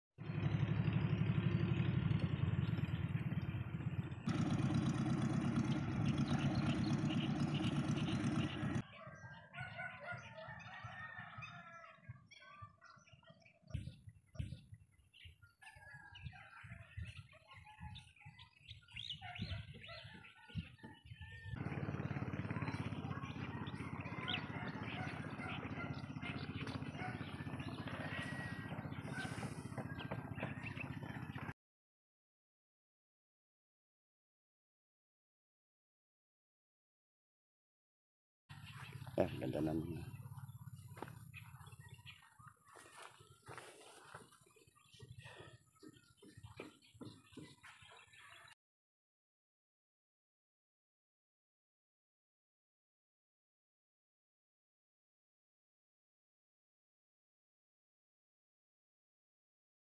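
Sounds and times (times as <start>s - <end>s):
low engine hum: 0.2s - 8.8s, 21.6s - 31.6s, 38.5s - 42.5s
small birds chirping: 5.4s - 31.5s, 38.5s - 48.6s.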